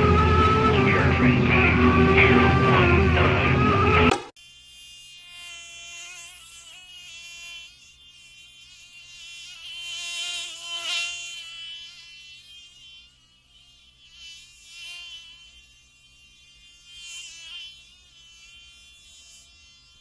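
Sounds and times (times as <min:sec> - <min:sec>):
flying insect buzzing: 0:03.9 - 0:20.0.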